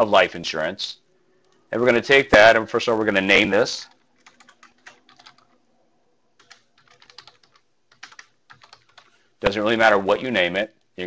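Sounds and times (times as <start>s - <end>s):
typing on computer keyboard: 3.8s - 5.6s, 6.4s - 9.2s.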